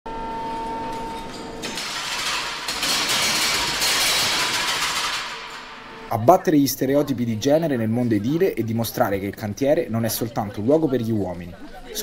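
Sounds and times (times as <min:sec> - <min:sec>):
hydraulic breaker hitting brick wall: 0:01.3 - 0:06.1.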